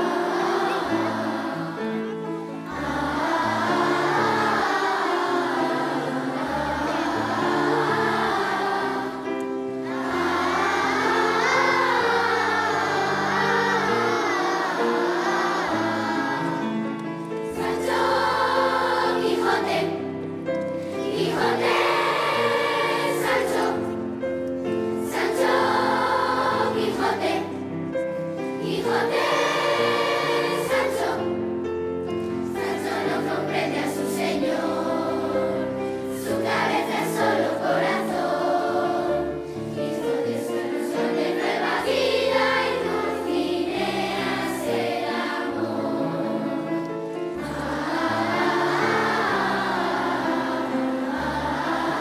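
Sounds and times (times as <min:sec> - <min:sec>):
children's choir singing: 0:00.0 - 0:52.0.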